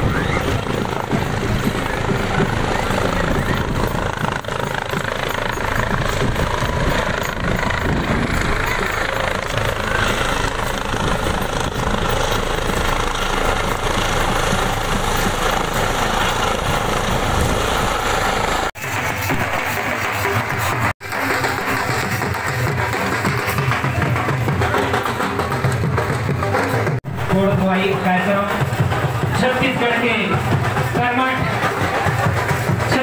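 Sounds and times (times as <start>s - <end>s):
helicopter rotor chop: 0.0s - 33.0s.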